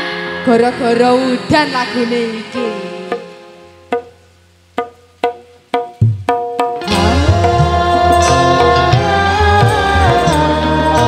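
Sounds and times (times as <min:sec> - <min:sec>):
wood-block-like percussion strikes: 0:03.0 - 0:11.0.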